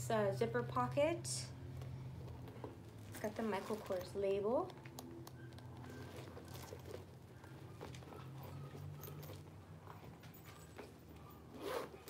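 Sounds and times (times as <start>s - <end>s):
handbag rustling: 2.1s - 12.0s.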